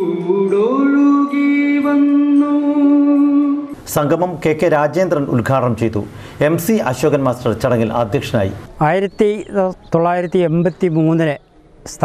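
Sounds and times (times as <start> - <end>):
man singing a long note: 0.0 - 3.8.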